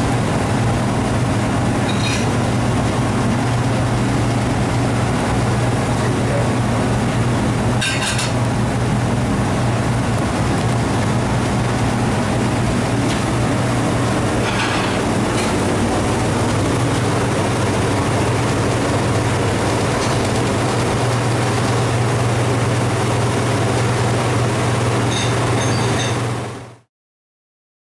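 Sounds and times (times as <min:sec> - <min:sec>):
kitchen oven fans droning: 0:00.0 - 0:26.9.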